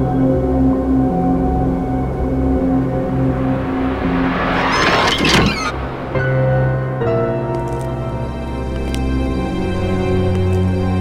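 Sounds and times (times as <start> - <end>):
background music: 0.0 - 4.6, 5.7 - 11.0
rushing whoosh: 2.1 - 7.1.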